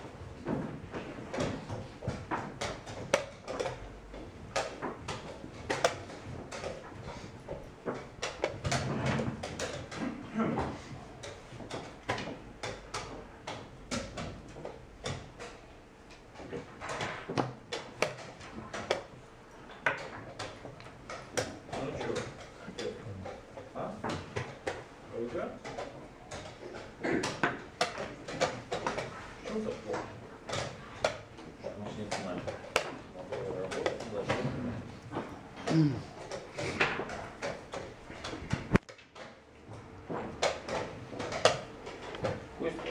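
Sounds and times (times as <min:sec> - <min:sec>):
chess pieces clacking on board: 0:00.4 - 0:42.9.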